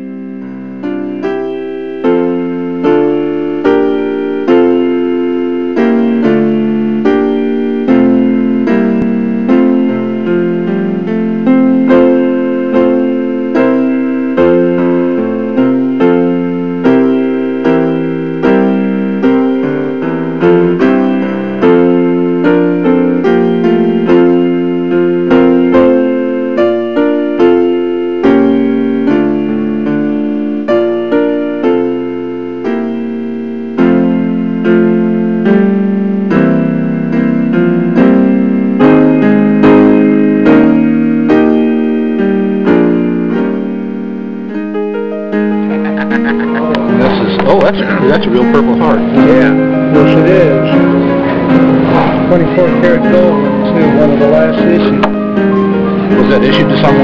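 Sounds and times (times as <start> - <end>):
solo piano music: 0.0 - 57.0.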